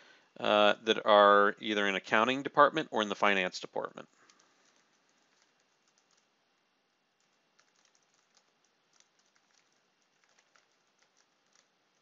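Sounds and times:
keyboard typing: 0:04.1 - 0:06.4, 0:07.2 - 0:12.0.

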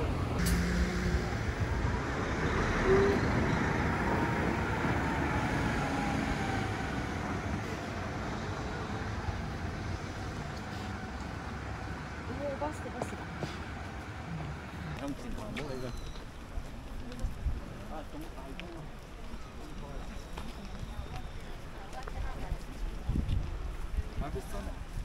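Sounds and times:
vehicle passing: 0:00.0 - 0:15.1.

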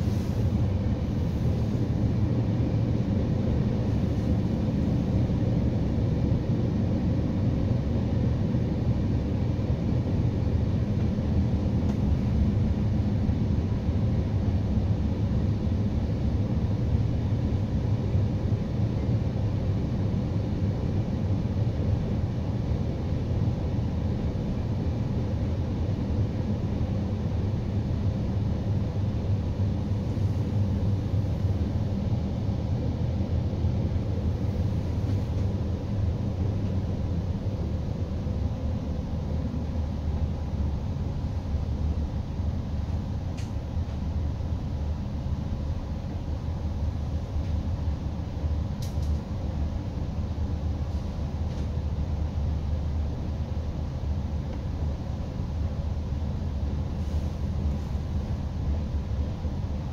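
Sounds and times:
train low rumble from inside: 0:00.0 - 0:59.9.

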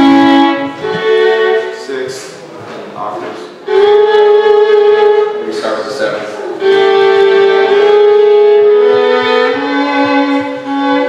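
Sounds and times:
fiddle bowed notes: 0:00.0 - 0:02.4, 0:03.2 - 0:11.0.

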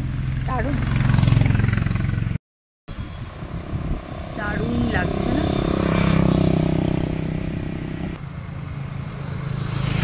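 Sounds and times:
road traffic rumble: 0:00.0 - 0:10.0
vehicle engine humming: 0:00.0 - 0:10.0.

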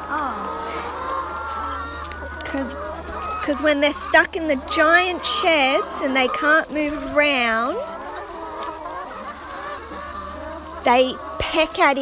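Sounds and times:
hens clucking: 0:00.0 - 0:12.0.

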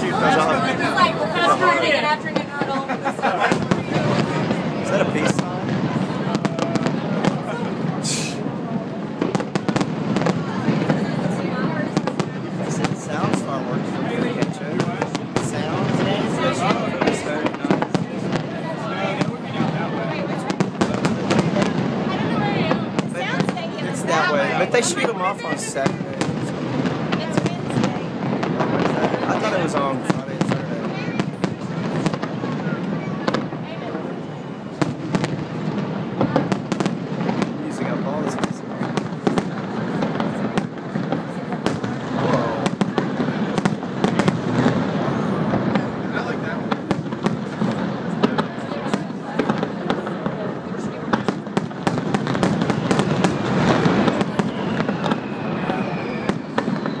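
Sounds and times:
fireworks bangs and crackles: 0:00.0 - 0:57.0.

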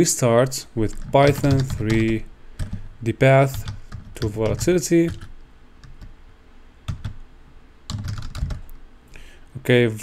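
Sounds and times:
computer keyboard typing: 0:00.8 - 0:06.2, 0:06.9 - 0:07.2, 0:07.9 - 0:08.8.

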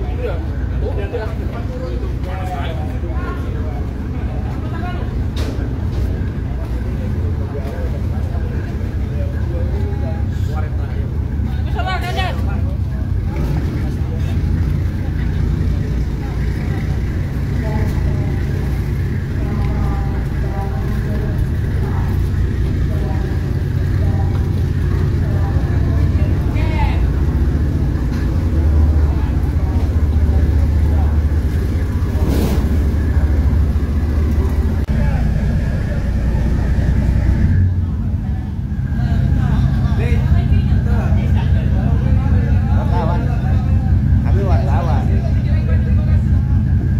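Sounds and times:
ferry diesel engines rumbling: 0:00.0 - 0:46.9.

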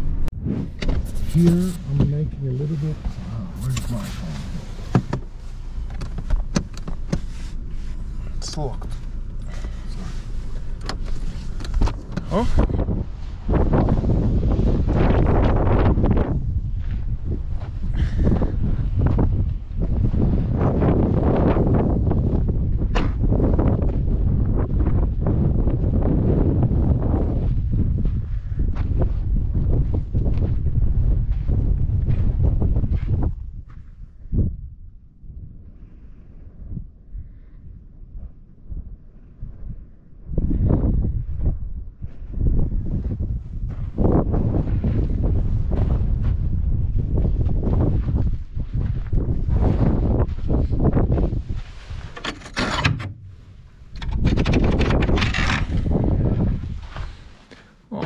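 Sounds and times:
wind buffeting microphone: 0:00.0 - 0:57.6.

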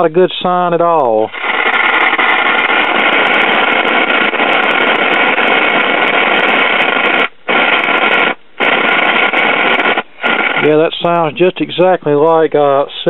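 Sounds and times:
radio speaker static: 0:00.0 - 0:13.0.

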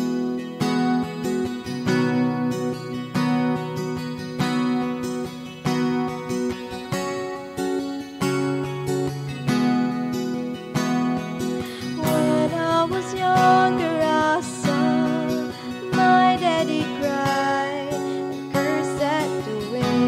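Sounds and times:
acoustic guitar strumming chords: 0:00.0 - 0:20.0.

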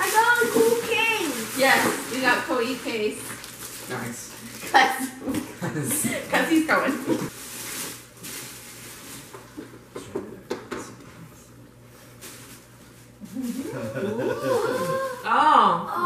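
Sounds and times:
wrapping paper rustling: 0:00.0 - 0:04.8, 0:07.3 - 0:09.5
wavering vocal sound: 0:13.2 - 0:16.0.

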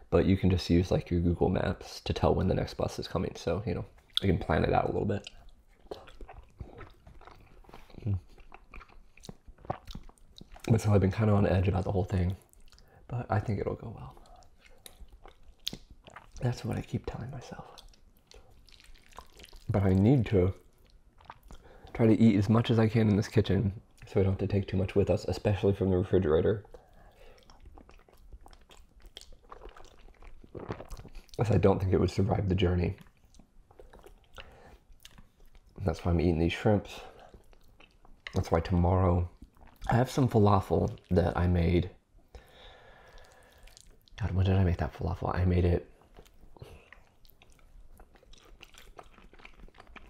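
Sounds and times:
chewing noodles: 0:03.9 - 0:22.1, 0:26.6 - 0:31.6, 0:32.8 - 0:35.8, 0:37.0 - 0:41.4, 0:42.3 - 0:44.3, 0:45.8 - 0:50.0
wet mouth clicks and smacks: 0:05.2 - 0:10.8, 0:12.4 - 0:12.9, 0:14.1 - 0:16.5, 0:17.6 - 0:19.7, 0:20.6 - 0:21.9, 0:26.6 - 0:31.4, 0:33.0 - 0:35.8, 0:43.0 - 0:44.2, 0:46.0 - 0:50.0.

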